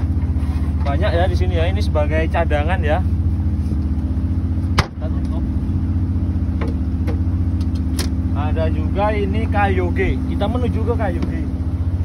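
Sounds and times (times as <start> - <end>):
low hum of boat machinery: 0.0 - 12.0.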